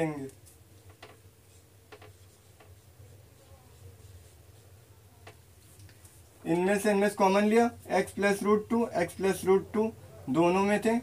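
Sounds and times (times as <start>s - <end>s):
marker writing on whiteboard: 0.3s - 5.8s.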